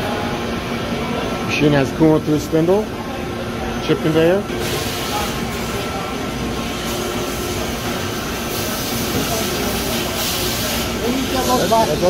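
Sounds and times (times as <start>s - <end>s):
machine hiss: 4.5s - 12.0s.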